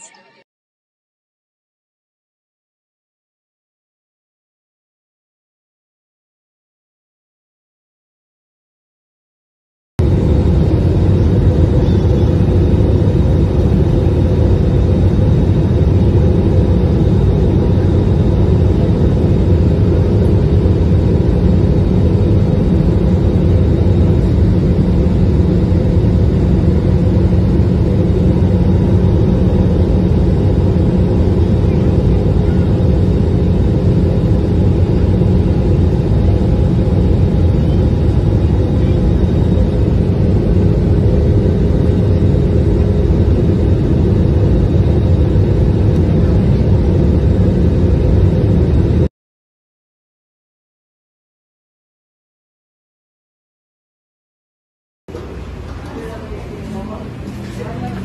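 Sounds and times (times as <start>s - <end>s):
jet airliner cabin roar: 10.0s - 49.1s, 55.1s - 58.0s.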